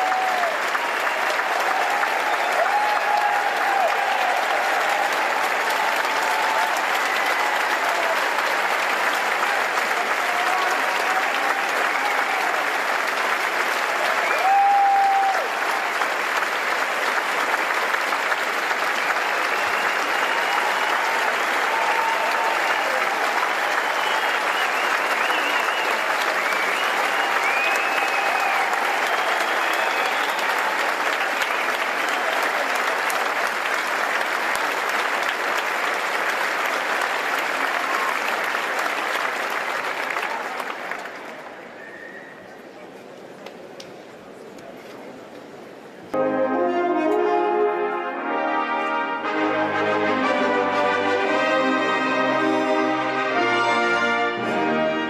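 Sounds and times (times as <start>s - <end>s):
audience clapping: 0.0s - 42.0s, 47.9s - 55.0s.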